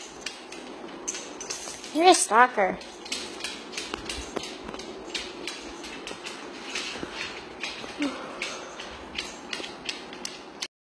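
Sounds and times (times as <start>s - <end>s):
dog claws clicking on wooden floor: 0.0s - 10.7s.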